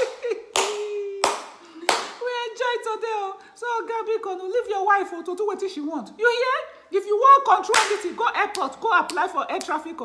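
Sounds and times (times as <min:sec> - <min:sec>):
woman laughing: 0:00.0 - 0:01.9
woman clapping hands: 0:00.0 - 0:02.2, 0:07.7 - 0:09.8.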